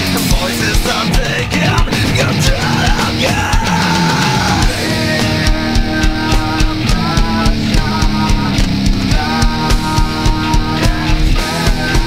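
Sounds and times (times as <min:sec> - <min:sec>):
drum kit beat: 0:00.0 - 0:12.0
electric guitar chords: 0:00.0 - 0:12.0.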